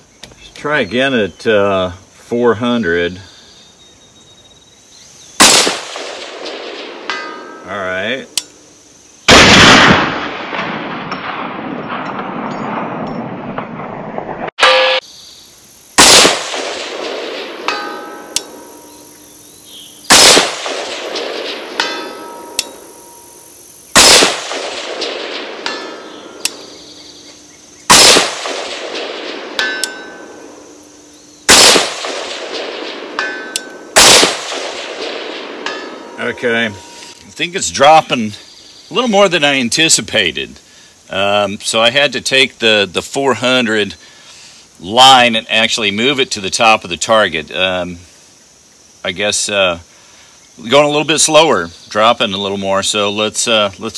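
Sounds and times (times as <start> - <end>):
rifle shots: 5.4 - 7.2, 9.3 - 15.0, 16.0 - 17.8, 20.1 - 22.8, 23.9 - 26.8, 27.9 - 30.6, 31.5 - 36.2
distant steel target ringing: 5.4 - 8.4, 14.6 - 15.1, 16.4 - 19.2, 20.1 - 26.9, 27.9 - 30.9, 31.5 - 37.2.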